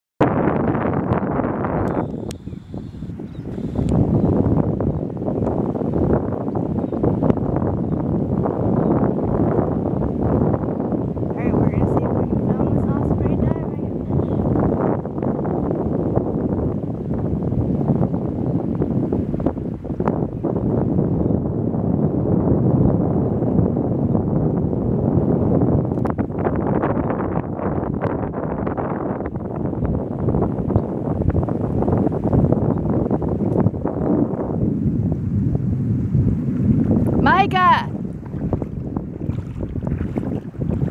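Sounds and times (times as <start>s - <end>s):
wind on microphone: 0.2s - 40.9s.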